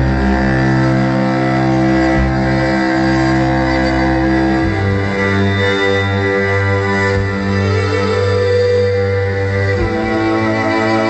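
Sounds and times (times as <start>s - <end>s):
cellos playing held chords: 0.0s - 11.0s.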